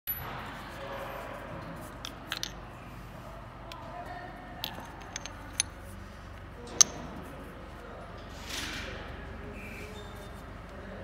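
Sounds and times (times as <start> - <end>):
murmur of faint voices: 0.2 - 11.0.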